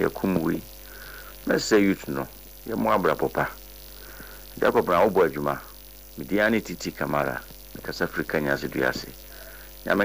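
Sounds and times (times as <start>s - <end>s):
low electrical hum: 0.0s - 10.0s
person speaking: 0.0s - 10.0s.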